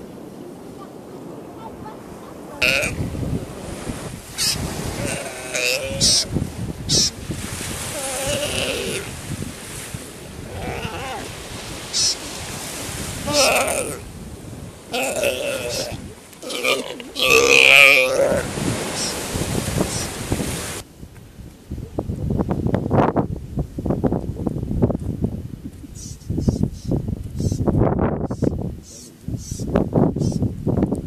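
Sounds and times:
sea lion calling: 2.6 - 3.0, 4.3 - 9.2, 10.4 - 12.4, 13.2 - 14.1, 14.9 - 19.2.

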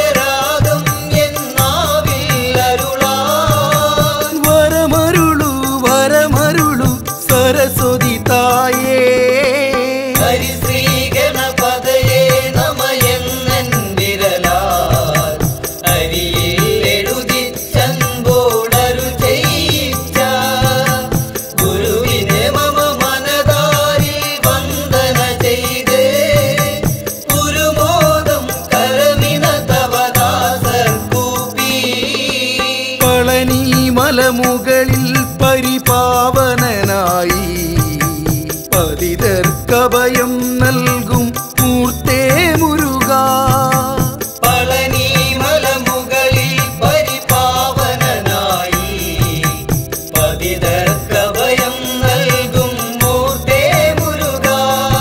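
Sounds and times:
devotional song with percussion: 0.0 - 55.0.

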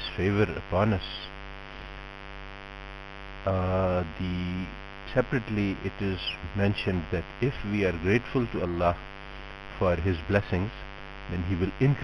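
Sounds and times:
person speaking: 0.0 - 1.3, 3.5 - 9.0, 9.7 - 12.0
electrical hum: 0.0 - 12.0.

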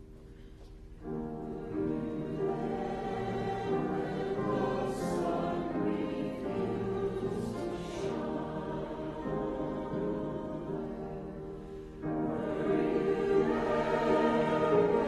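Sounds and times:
choir singing a hymn: 1.0 - 15.0.

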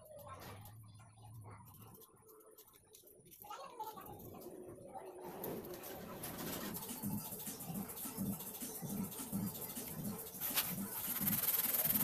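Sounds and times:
pigeon cooing: 5.3 - 12.0.

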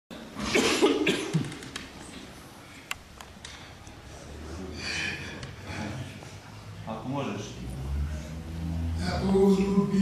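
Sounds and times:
elderly man coughing: 0.4 - 1.4.

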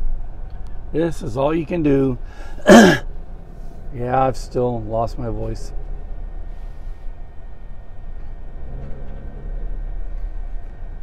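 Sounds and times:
road noise: 0.0 - 11.0
steady low hum: 0.0 - 11.0
truck engine rumble: 0.0 - 11.0.

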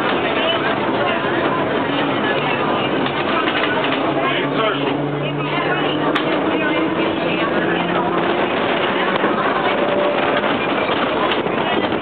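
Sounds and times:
streetcar running noise: 0.0 - 12.0
voices in background: 0.0 - 12.0.

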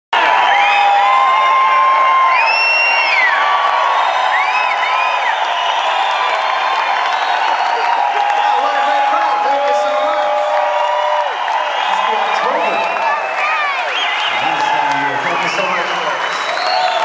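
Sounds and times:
audience cheering and applauding: 0.1 - 17.0
piercing whistles: 13.9 - 14.5, 16.3 - 17.0.

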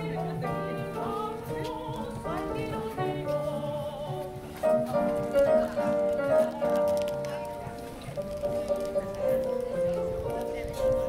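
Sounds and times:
woman singing operatically: 1.0 - 4.4.

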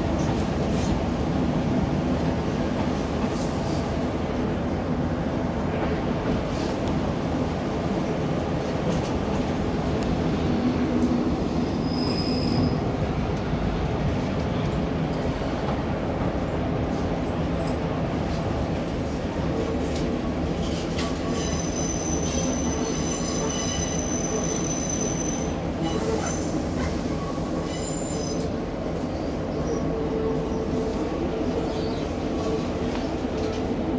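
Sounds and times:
train rumbling along track: 0.0 - 33.9
high squeal: 11.7 - 12.8.

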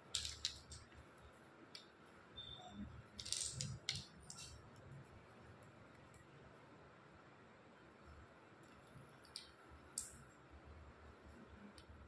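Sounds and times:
wooden dominoes clicking on tile: 0.0 - 1.0, 3.2 - 4.6, 8.7 - 10.3.

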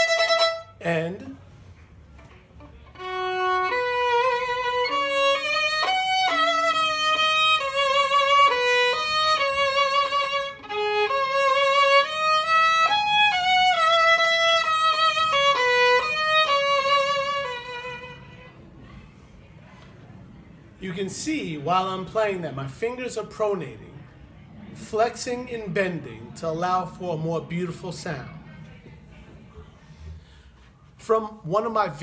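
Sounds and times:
solo violin melody: 0.0 - 1.3, 2.1 - 18.6.

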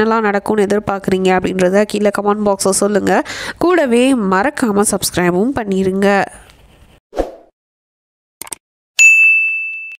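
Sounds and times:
notification bell ding: 9.0 - 10.0.

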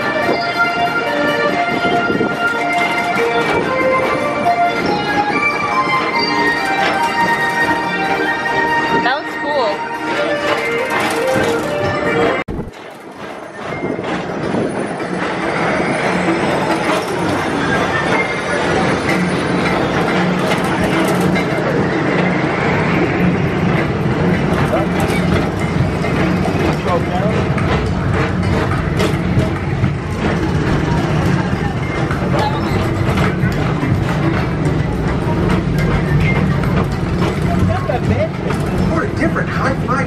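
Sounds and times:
ride car rumbling along track: 0.0 - 40.0.

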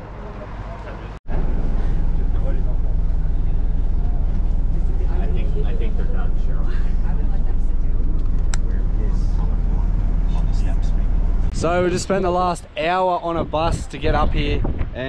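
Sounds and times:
bus engine and road rumble: 0.0 - 15.0.

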